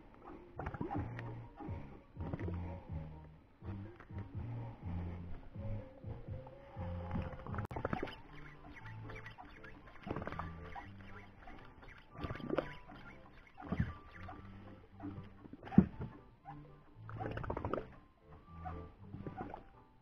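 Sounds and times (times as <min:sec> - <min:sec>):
low background music: 0:00.0 - 0:20.0
reel and rod clicking: 0:07.2 - 0:16.2.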